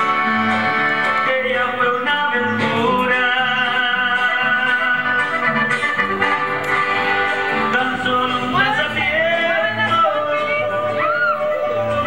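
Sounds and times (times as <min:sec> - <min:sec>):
instrumental backing: 0:00.0 - 0:12.0.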